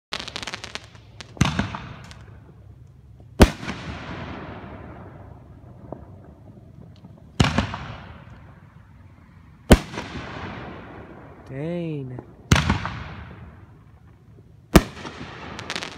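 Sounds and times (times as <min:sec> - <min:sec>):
loud fireworks bangs: 0:00.1 - 0:08.9, 0:09.6 - 0:15.9
fireworks crackling: 0:00.1 - 0:15.9.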